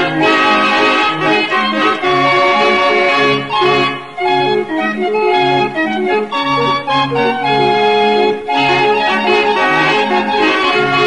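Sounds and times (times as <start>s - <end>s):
barrel organ playing a tune: 0.0s - 11.0s.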